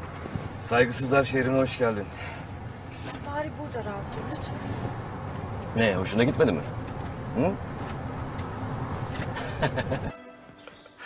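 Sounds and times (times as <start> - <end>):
car cabin road and engine noise: 0.0 - 10.1.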